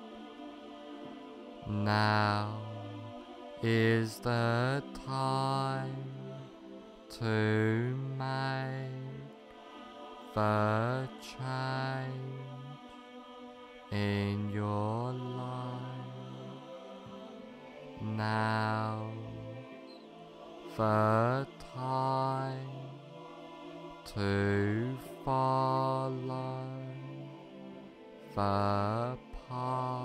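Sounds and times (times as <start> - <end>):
meditation music chant-like tones: 0.0 - 30.0.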